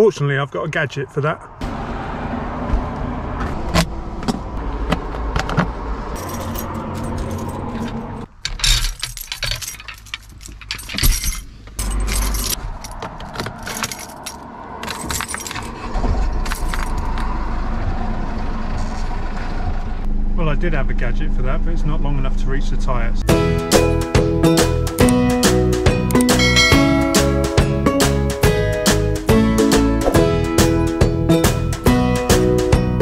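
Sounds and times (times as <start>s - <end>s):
metal lock and keys rattling: 6.1s - 17.3s.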